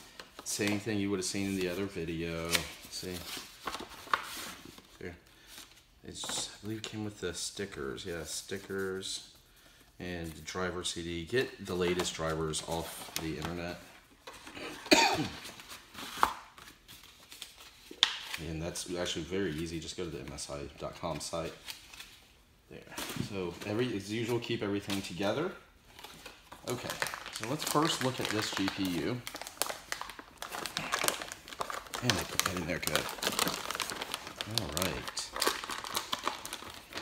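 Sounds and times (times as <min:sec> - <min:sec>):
packaging rustling: 0:22.8 - 0:37.0
plastic bag crinkling: 0:26.0 - 0:37.0.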